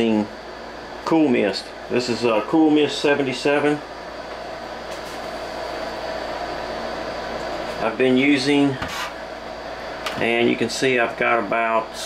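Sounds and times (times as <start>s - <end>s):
air conditioner hum and hiss: 0.0s - 12.0s.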